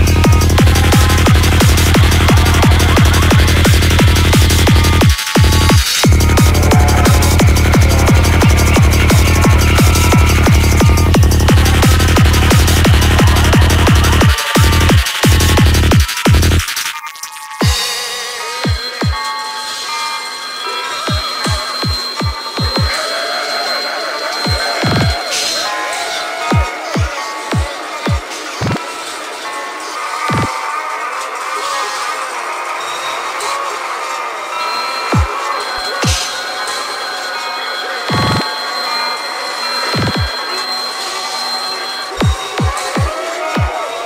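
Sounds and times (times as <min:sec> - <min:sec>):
deep falling synth sweep: 0:00.0 - 0:16.0
deep kick drums: 0:00.0 - 0:16.6
electronic synth lines: 0:00.0 - 0:17.9, 0:18.6 - 0:28.9, 0:34.0 - 0:43.7.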